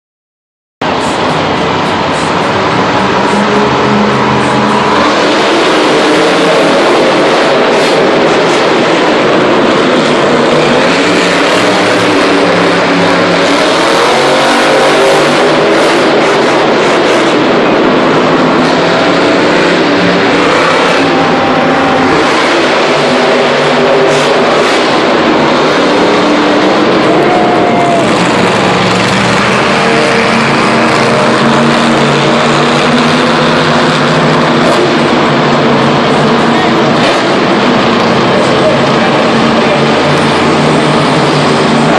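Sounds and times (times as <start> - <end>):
truck engines revving loudly: 0.8 - 41.9.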